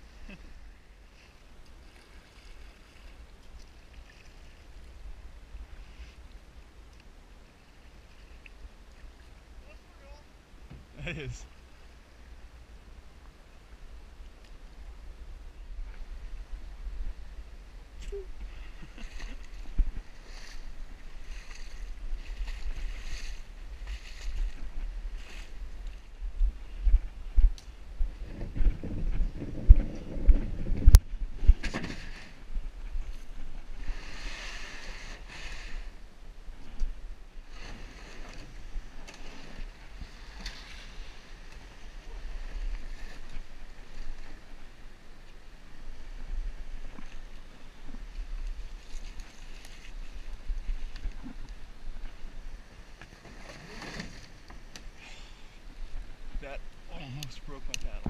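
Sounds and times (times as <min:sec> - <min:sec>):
wind on microphone: 0:14.6 - 0:45.0.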